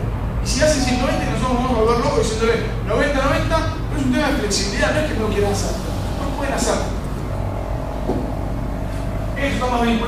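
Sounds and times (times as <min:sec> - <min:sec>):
room hum: 0:00.0 - 0:10.0
faint high tone: 0:00.5 - 0:02.3.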